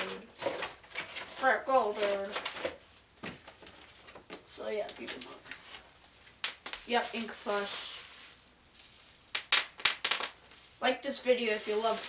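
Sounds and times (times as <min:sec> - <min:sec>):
bubble wrap popping: 0:04.9 - 0:12.0.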